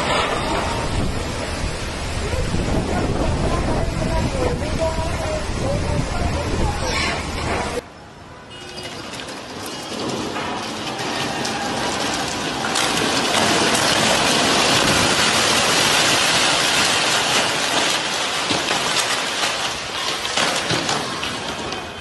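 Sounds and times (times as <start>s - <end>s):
heavy rain and wind hissing: 0.0s - 7.8s, 9.6s - 22.0s
wall debris clattering down: 8.8s - 22.0s.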